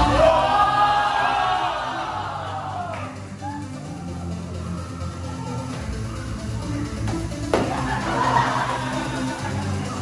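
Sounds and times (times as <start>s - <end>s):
dance music: 0.0s - 10.0s.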